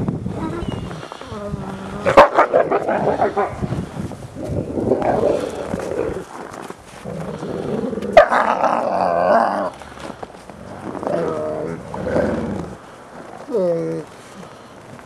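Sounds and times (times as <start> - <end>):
wolves snarling and growling: 0.9 - 14.1.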